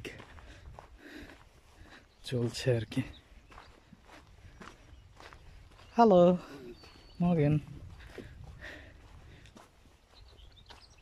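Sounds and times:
footsteps on dirt track: 0:00.0 - 0:11.0.

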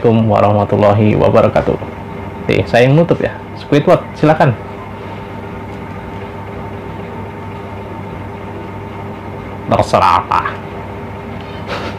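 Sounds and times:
steady mechanical hum: 0:00.0 - 0:11.9.

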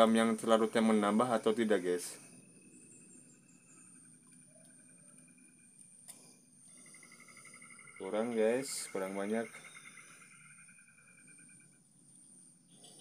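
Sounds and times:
faint insect chirring: 0:00.0 - 0:13.0.

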